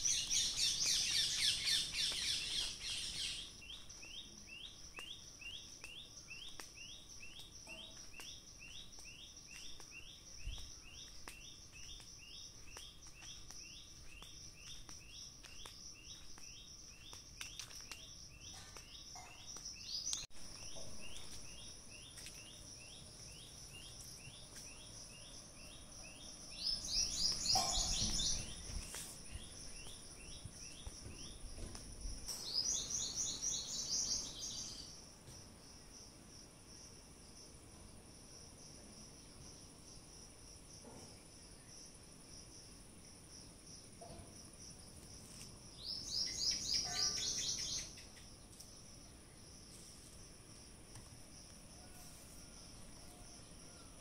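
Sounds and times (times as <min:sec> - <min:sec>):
birds chirping: 0:00.0 - 0:31.4.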